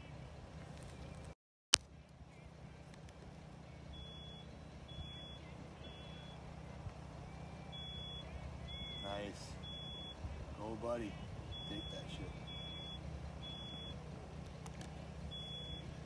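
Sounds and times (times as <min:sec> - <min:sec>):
steady low rumble: 0:00.0 - 0:16.0
short high electronic beeps: 0:07.7 - 0:10.2, 0:11.6 - 0:14.0.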